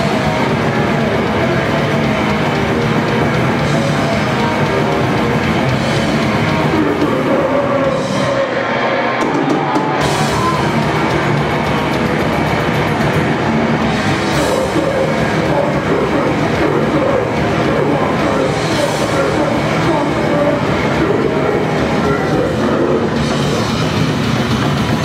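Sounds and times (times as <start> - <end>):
grindcore band playing live: 0.0 - 25.0.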